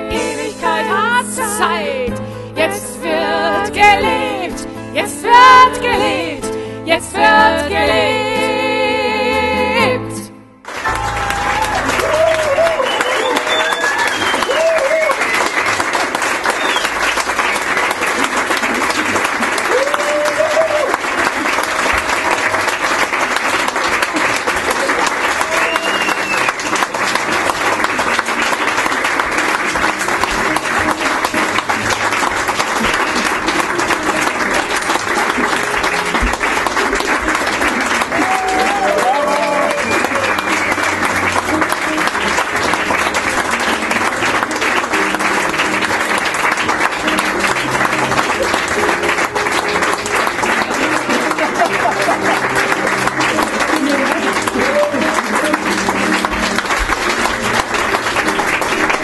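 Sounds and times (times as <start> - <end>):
audience applauding: 0.0 - 1.7, 10.6 - 59.0.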